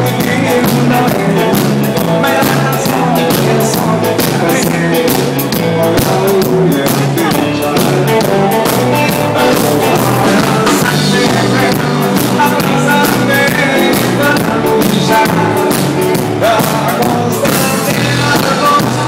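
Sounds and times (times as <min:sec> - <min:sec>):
drums: 0:00.0 - 0:19.0
electric bass: 0:00.0 - 0:19.0
guitar: 0:00.0 - 0:19.0
live band playing rock and roll: 0:00.0 - 0:19.0.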